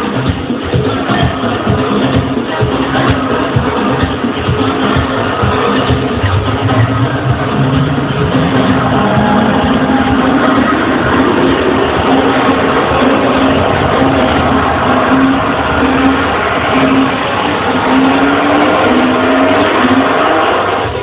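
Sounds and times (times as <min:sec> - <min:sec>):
electronic dance music: 0:00.0 - 0:21.0
repeating synth note: 0:04.8 - 0:21.0.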